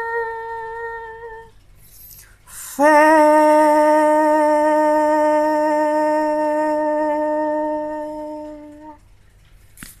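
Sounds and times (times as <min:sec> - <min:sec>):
woman singing a long note: 0:00.0 - 0:01.5, 0:02.7 - 0:09.0.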